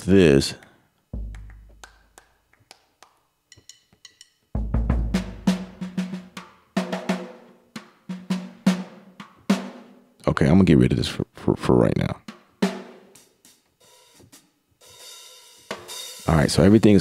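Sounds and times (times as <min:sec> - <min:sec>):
bass drum hit: 0:01.2 - 0:01.8, 0:04.6 - 0:05.9
faint drum taps: 0:01.2 - 0:01.8.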